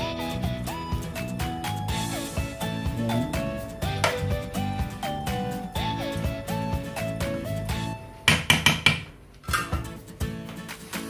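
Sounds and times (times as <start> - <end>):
background music with beat: 0.0 - 8.1, 9.5 - 11.0
metal ladle knocking on pot: 8.3 - 9.8.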